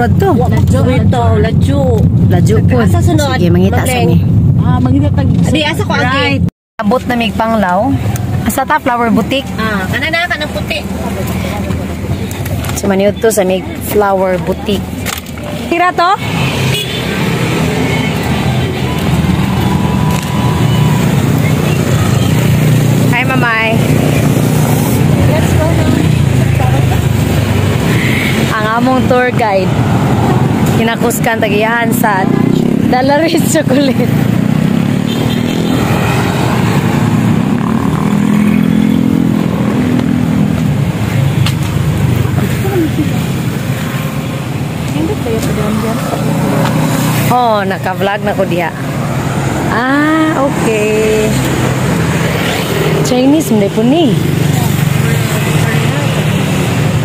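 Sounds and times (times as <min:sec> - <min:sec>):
street traffic: 0:00.0 - 0:57.0
vehicle engine rumbling: 0:00.0 - 0:57.0
small motorcycle passing: 0:16.3 - 0:43.5, 0:49.4 - 0:57.0.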